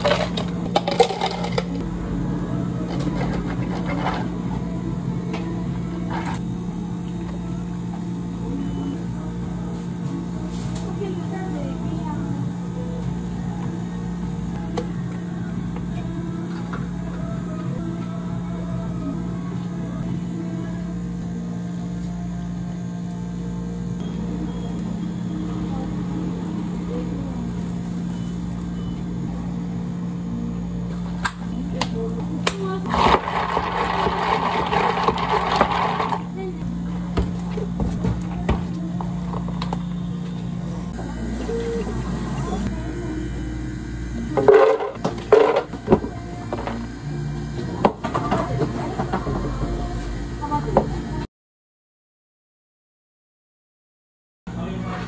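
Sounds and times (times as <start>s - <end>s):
ice cubes clattering into plastic cups: 0.0s - 1.8s, 32.9s - 36.3s
steady low hum: 0.0s - 51.3s.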